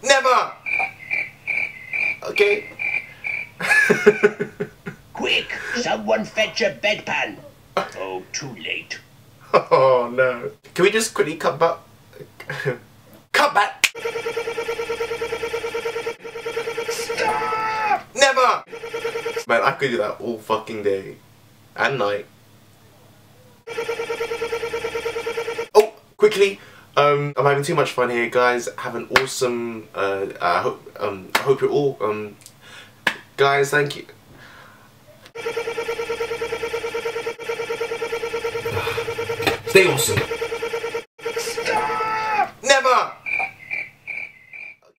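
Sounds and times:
electronic ringing tone: 14.0 - 17.8, 18.7 - 19.5, 23.7 - 25.7, 35.4 - 42.0.

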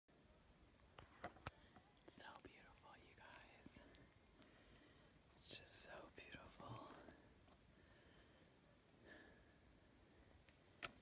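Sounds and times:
person whispering: 2.1 - 4.0, 5.4 - 7.2.

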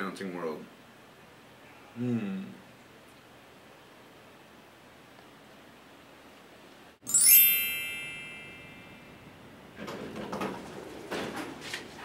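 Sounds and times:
chime glissando: 7.0 - 9.5.

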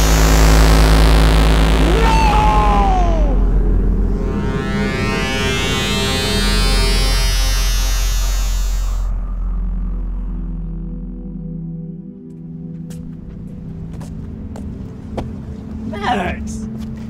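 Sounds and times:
falling pitch glides: 0.0 - 12.2
rising synth sweep: 0.0 - 12.7
steady low drone: 0.0 - 17.0.

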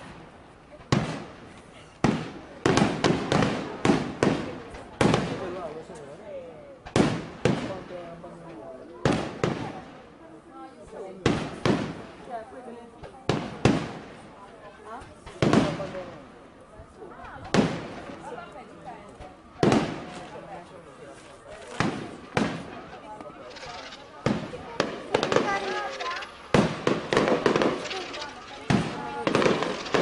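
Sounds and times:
firework shells bursting: 21.6 - 30.0.

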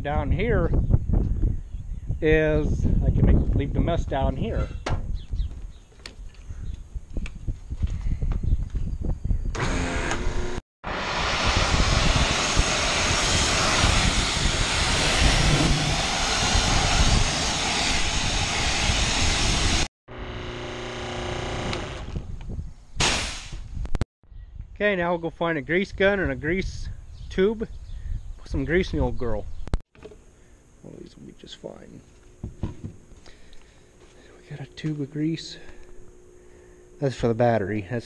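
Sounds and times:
low hum: 9.6 - 22.5, 30.2 - 38.0
pressure washer spraying: 10.9 - 19.9.

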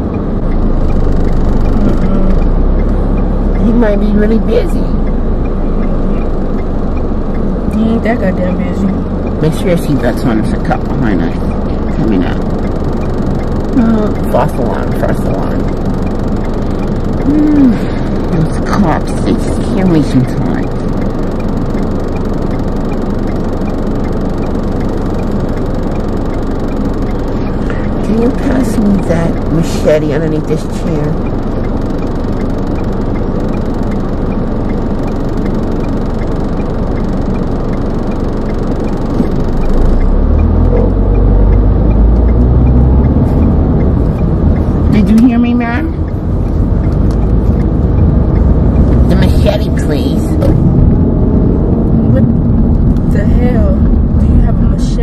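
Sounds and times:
car cabin road and engine noise: 0.0 - 55.0
faint regular ticking: 0.0 - 55.0
low rising and falling tone: 0.0 - 55.0.

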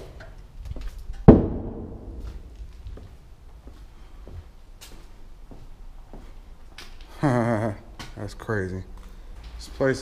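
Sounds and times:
heavy thud with echo: 1.3 - 2.5.

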